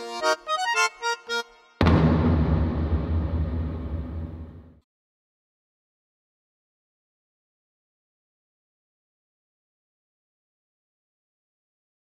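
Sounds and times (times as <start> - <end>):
accordion jingle: 0.0 - 2.3
deep rumbling crash: 1.8 - 4.8.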